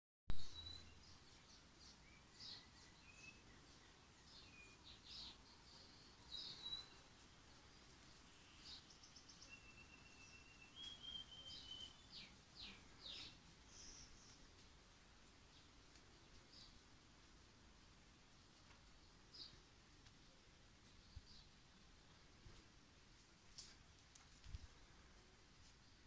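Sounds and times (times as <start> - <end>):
birds chirping: 0.3 - 17.6, 18.2 - 22.4
steady whistled bird note: 9.4 - 12.1.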